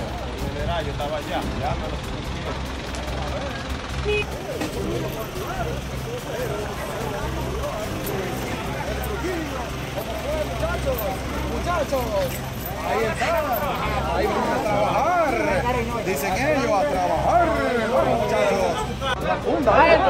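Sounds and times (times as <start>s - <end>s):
people talking: 0.0s - 20.0s
vehicle engine idling: 0.0s - 20.0s.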